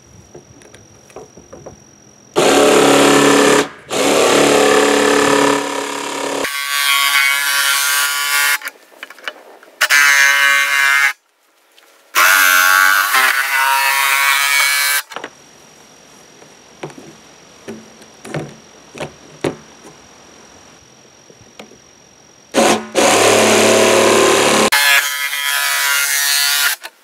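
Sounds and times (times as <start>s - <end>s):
cordless drill boring plastic: 2.4s - 6.5s.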